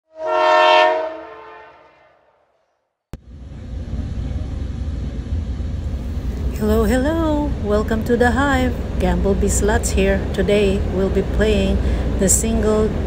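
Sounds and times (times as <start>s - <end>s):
train horn: 0.1s - 2.4s
moving train rumble: 3.2s - 13.0s.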